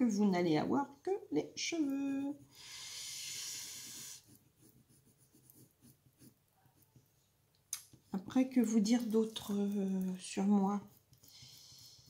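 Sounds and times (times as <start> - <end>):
long breath out: 2.5 - 4.1
pencil scratching on paper: 3.4 - 7.1, 9.0 - 12.0.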